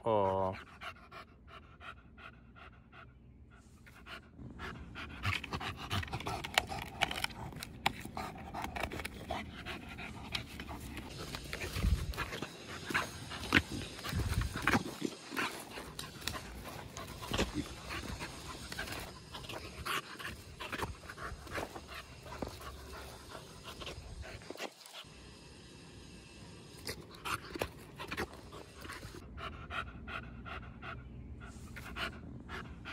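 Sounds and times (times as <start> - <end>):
dog panting: 0.2 - 25.2, 26.8 - 32.9.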